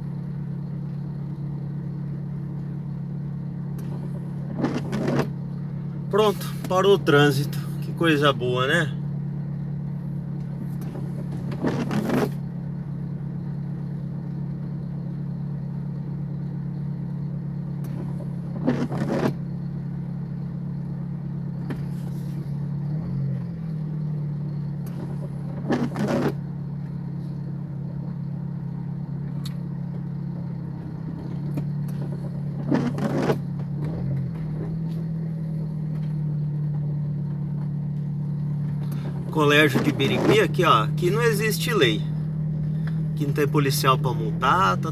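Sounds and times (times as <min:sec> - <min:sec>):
car engine idling: 0:00.0 - 0:44.9
windshield wipers swishing: 0:03.8 - 0:05.3, 0:10.5 - 0:12.4, 0:17.9 - 0:19.4, 0:24.8 - 0:26.4, 0:31.1 - 0:35.0.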